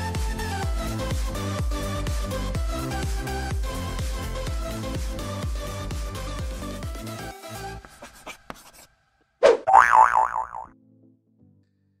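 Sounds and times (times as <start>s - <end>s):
cartoon boing sound effect: 9.4s - 10.7s.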